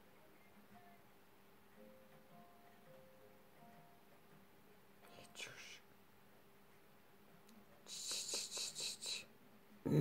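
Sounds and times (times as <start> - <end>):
faint television sound: 0.0 - 10.0.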